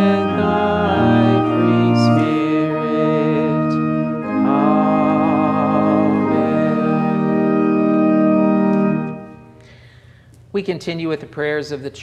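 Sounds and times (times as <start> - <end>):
voices singing: 0.0 - 8.9
church organ playing: 0.0 - 10.0.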